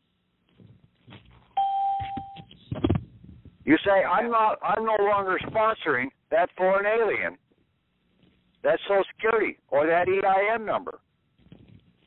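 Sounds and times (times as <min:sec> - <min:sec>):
steady electronic beep: 0:01.6 - 0:02.5
telephone line hiss: 0:01.6 - 0:02.5.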